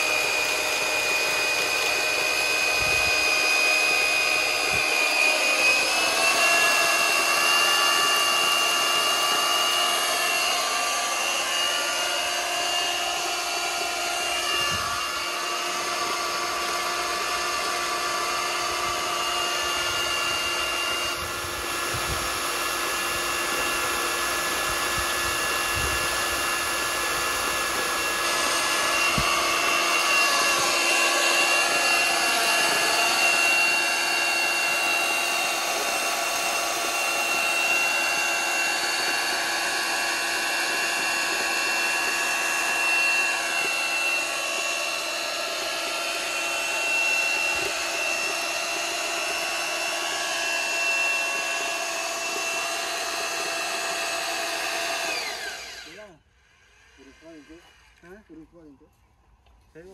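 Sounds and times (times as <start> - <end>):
heavy electric drill running: 0.0 - 58.8
high gear whine: 0.0 - 59.8.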